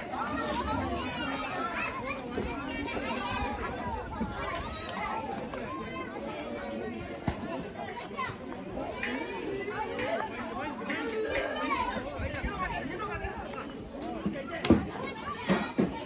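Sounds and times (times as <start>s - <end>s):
crowd of voices talking: 0.0s - 16.0s.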